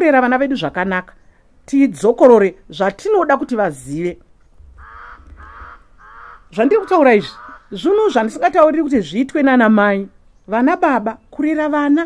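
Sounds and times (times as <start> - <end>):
faint low rumble: 4.4 - 6.6
bird calling: 4.4 - 8.5.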